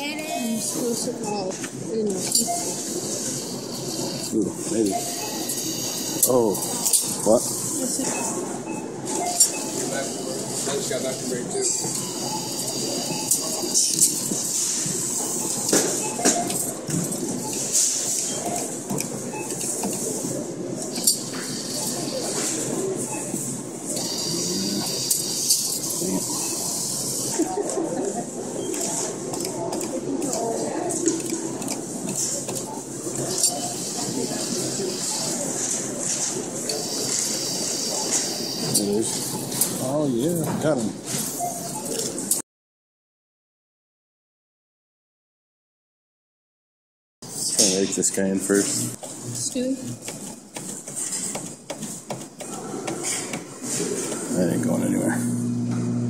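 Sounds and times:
indistinct voices: 0:24.0 - 0:25.2.

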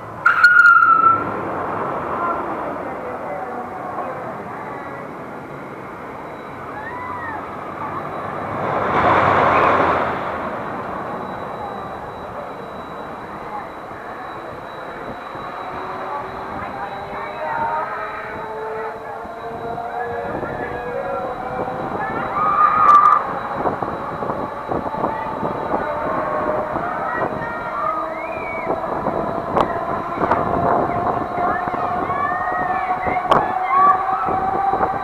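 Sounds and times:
swing ride machinery rushing: 0:00.0 - 0:35.0
high-pitched yell: 0:06.3 - 0:08.4, 0:11.1 - 0:35.0.

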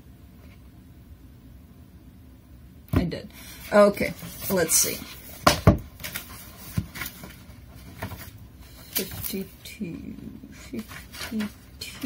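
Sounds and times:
paper pages leafed through: 0:03.4 - 0:09.6, 0:10.6 - 0:12.0.

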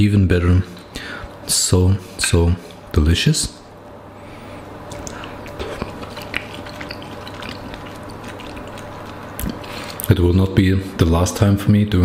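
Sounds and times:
person chewing food: 0:04.8 - 0:10.1
wet mouth clicks: 0:04.9 - 0:10.1.

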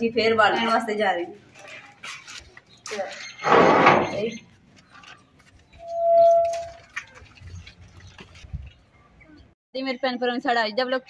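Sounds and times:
gate hinge squealing: 0:05.8 - 0:06.8.

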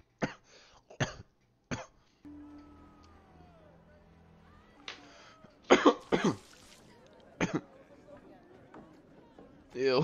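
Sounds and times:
person coughing: 0:05.7 - 0:06.4.

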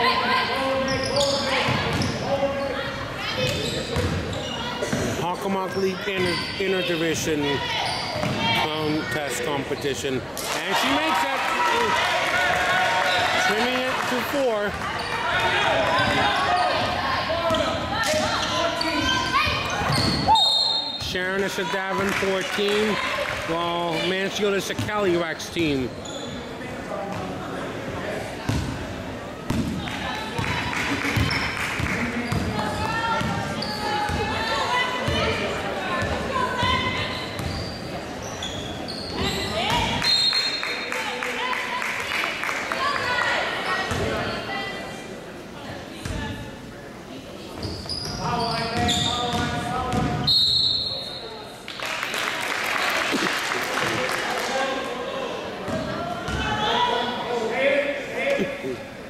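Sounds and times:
voices echoing in gym: 0:00.0 - 0:59.0.

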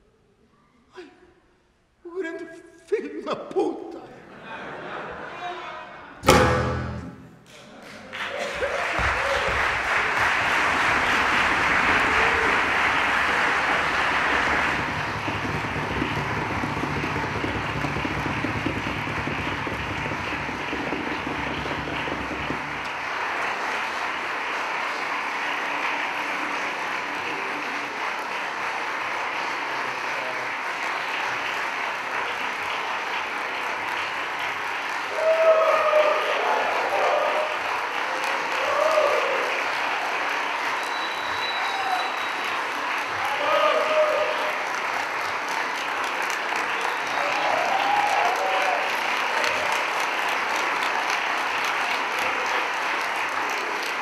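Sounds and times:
audience applauding: 0:07.4 - 0:54.0.

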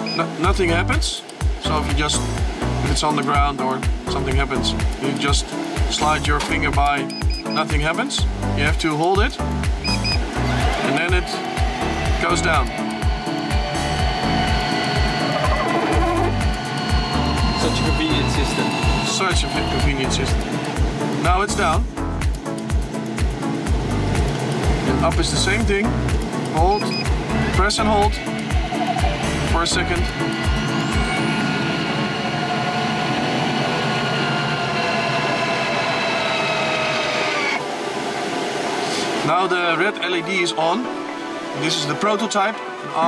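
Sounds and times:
background music with deep beat: 0:00.0 - 0:32.1
cockpit airflow noise: 0:09.7 - 0:39.3
electric motor whine: 0:10.2 - 0:21.1, 0:28.3 - 0:38.9.

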